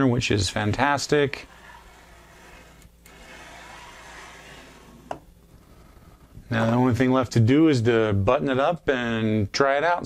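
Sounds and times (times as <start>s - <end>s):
printer belt and pulleys rolling: 1.2s - 5.2s.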